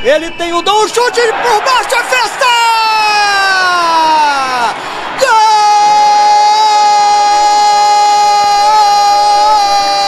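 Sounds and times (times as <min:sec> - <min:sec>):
commentator shouting: 0:00.2 - 0:10.0.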